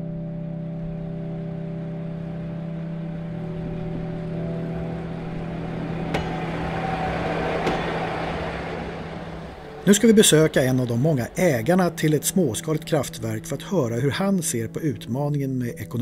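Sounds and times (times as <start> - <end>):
diesel locomotive engine humming: 0.0 - 15.2.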